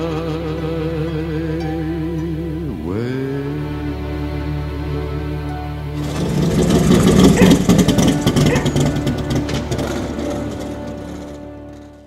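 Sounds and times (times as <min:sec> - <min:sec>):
rough fluttering rumble: 0:06.0 - 0:12.0.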